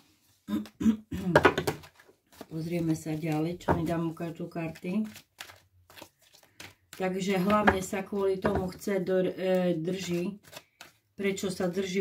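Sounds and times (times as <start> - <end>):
soft card rustles and flicks: 1.5 - 11.9.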